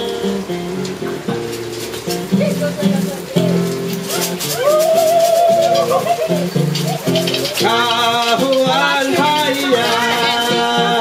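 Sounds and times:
acoustic guitar: 0:00.0 - 0:11.0
shaker rattling: 0:01.4 - 0:11.0.

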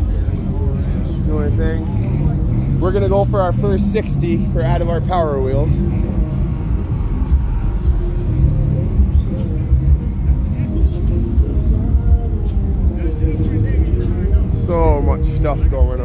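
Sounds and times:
deep subwoofer bass: 0:00.0 - 0:16.0
faint voices: 0:00.0 - 0:16.0.

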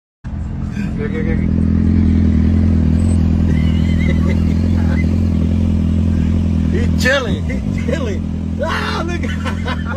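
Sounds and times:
car engine and road noise: 0:00.2 - 0:09.9
motorcycle passing alongside: 0:00.3 - 0:09.9.

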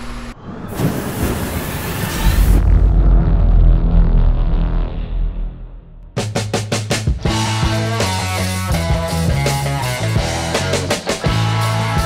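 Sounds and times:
loud whoosh: 0:00.2 - 0:06.4
deep booming rumble: 0:00.7 - 0:07.8
cinematic music: 0:02.4 - 0:12.0.

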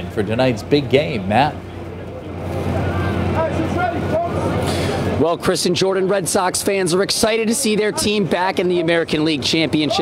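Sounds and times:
faint voices: 0:00.0 - 0:10.0
traffic noise: 0:00.0 - 0:10.0.

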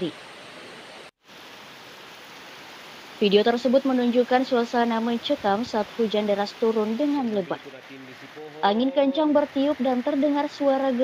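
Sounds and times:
heavy rain hiss: 0:00.0 - 0:11.0.

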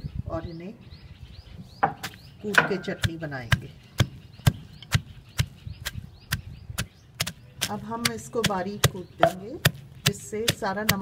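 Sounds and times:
wooden pestle pounding in mortar: 0:01.8 - 0:11.0.

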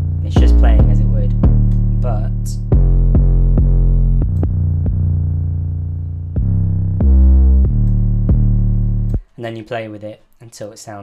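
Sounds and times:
drum machine hits: 0:00.0 - 0:05.1
synth bass: 0:00.0 - 0:09.2.

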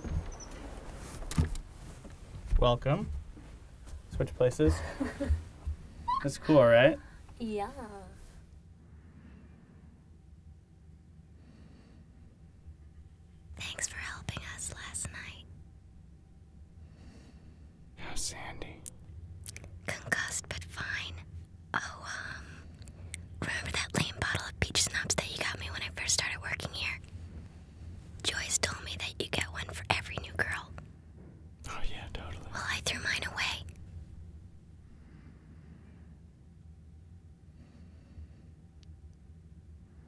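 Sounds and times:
hushed whispering: 0:13.6 - 0:15.5, 0:18.0 - 0:18.9, 0:19.8 - 0:22.6, 0:23.4 - 0:27.1, 0:28.2 - 0:30.8, 0:31.6 - 0:33.7.

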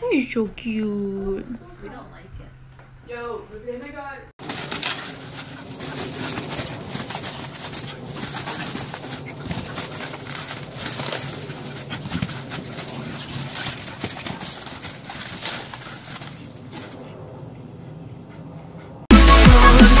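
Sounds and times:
dog paws thumping on trampoline: 0:04.4 - 0:17.0.

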